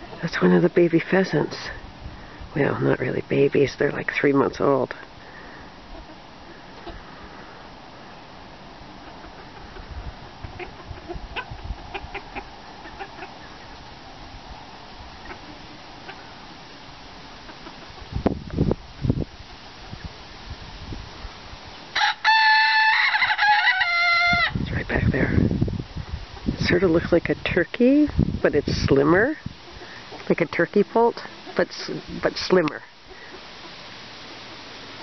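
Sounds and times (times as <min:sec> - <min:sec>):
rooster crowing: 0:22.0 - 0:24.6.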